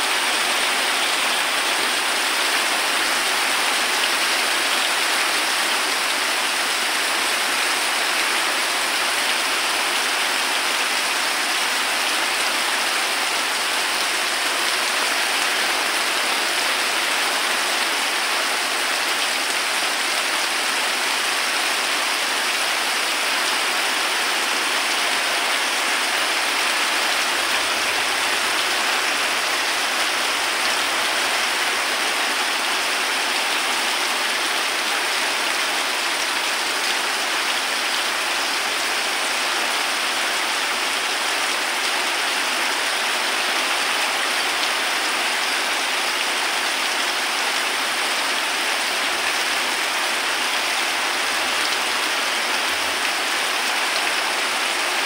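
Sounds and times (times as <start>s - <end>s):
heavy rain on floodwater: 0.0s - 55.0s.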